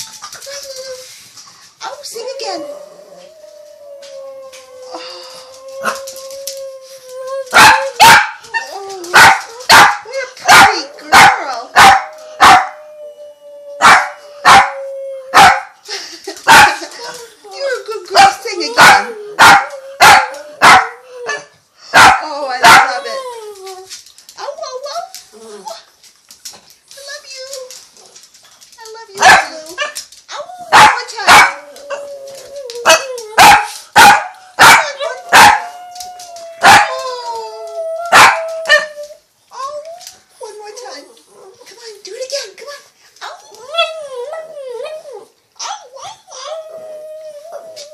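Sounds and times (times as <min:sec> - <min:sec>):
dog barking and baying: 0:07.5 - 0:08.4, 0:09.1 - 0:12.8, 0:13.8 - 0:15.7, 0:16.5 - 0:16.9, 0:18.2 - 0:23.2, 0:29.2 - 0:29.6, 0:30.7 - 0:31.6, 0:32.8 - 0:35.7, 0:36.6 - 0:37.0, 0:38.1 - 0:39.0.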